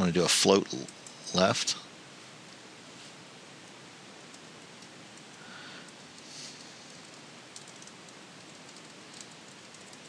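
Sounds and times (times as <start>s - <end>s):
recording hiss: 0.0s - 10.0s.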